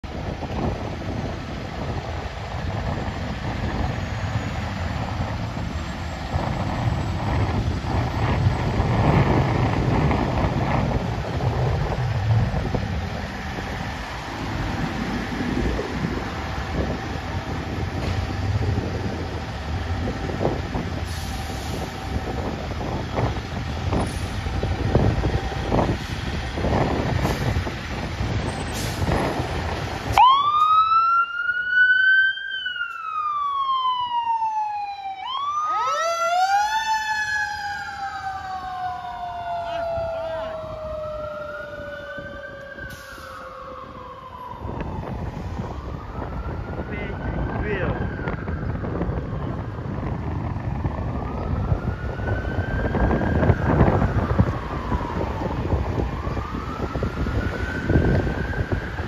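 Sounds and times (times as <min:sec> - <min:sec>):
fire engine rumbling: 0:00.0 - 0:59.0
second siren: 0:02.9 - 0:59.0
siren wailing: 0:02.9 - 0:59.0.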